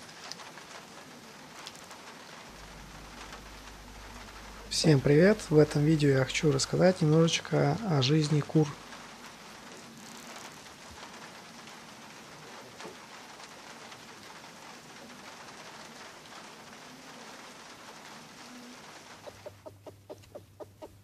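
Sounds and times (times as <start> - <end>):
outdoor background hiss: 0.0 - 21.0
rooster clucking: 19.2 - 21.0.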